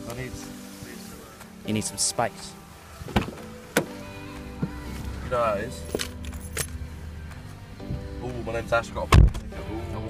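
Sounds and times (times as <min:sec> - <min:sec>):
background music: 0:00.0 - 0:10.0
keys jingling: 0:05.8 - 0:06.9.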